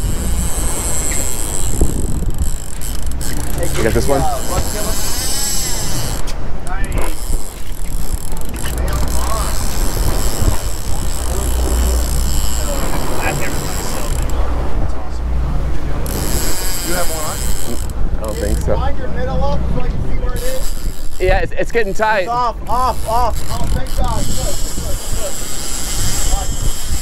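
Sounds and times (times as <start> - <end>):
fishing reel clicking and whirring: 0.0 - 14.4, 16.0 - 18.8, 20.2 - 21.5, 22.3 - 27.0
water: 0.0 - 27.0
wind: 0.0 - 27.0.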